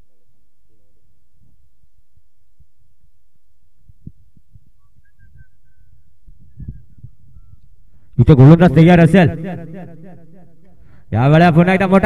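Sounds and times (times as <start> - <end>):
wind buffeting microphone: 3.8 - 7.9.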